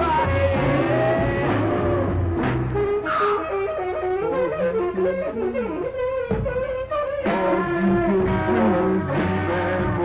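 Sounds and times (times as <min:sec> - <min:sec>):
blues-rock song recording: 0:00.0 - 0:10.0
alto saxophone improvising: 0:00.7 - 0:10.0.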